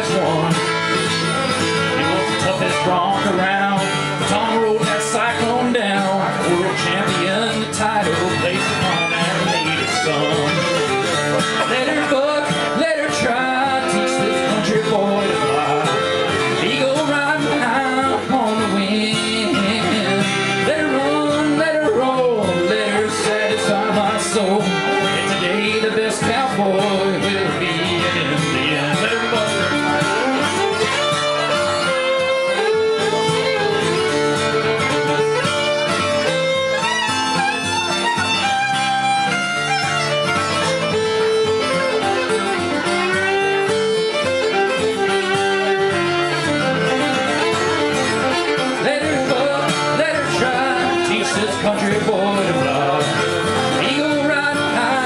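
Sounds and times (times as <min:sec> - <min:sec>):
acoustic guitar strumming: 0:00.0 - 0:55.0
fiddle playing melody: 0:00.0 - 0:55.0.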